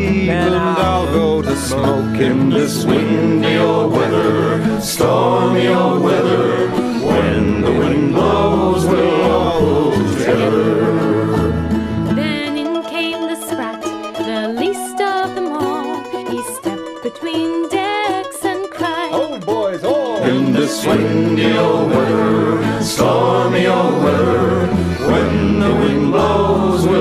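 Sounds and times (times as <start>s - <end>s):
folk music with plucked strings: 0.0s - 27.0s.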